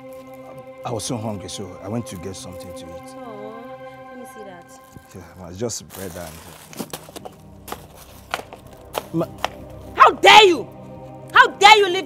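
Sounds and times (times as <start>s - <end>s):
high heels stamping on paving: 6.9s - 9.6s.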